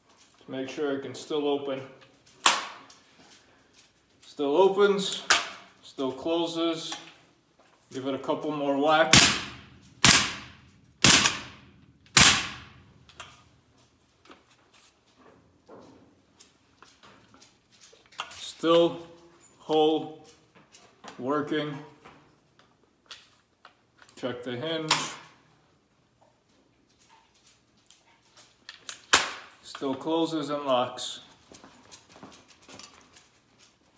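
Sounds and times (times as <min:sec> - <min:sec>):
rifle banging on concrete: 0:09.1 - 0:12.9
rifle handling clicks and rattles: 0:09.1 - 0:15.1, 0:22.6 - 0:24.2, 0:26.9 - 0:30.0.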